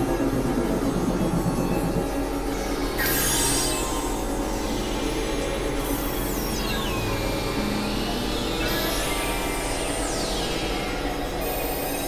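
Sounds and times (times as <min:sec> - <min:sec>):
dense synthesizer hiss: 0:00.0 - 0:02.9
low synth drones: 0:00.0 - 0:12.0.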